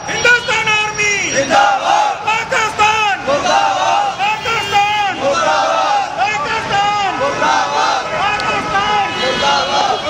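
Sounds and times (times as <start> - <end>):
crowd of men shouting slogans: 1.3 - 10.0.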